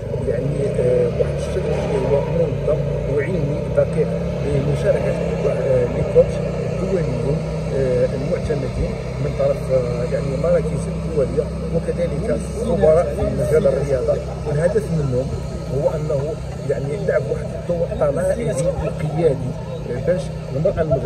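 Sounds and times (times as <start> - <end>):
man speaking: 0.0 - 21.0
steady low rumble: 0.0 - 21.0.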